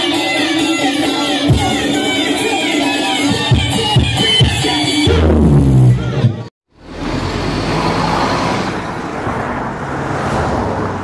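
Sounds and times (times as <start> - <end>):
vehicles driving past: 6.7 - 11.0.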